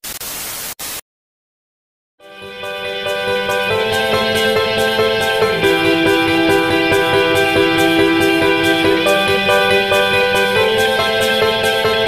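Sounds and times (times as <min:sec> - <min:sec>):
tv static hiss: 0:00.0 - 0:01.0.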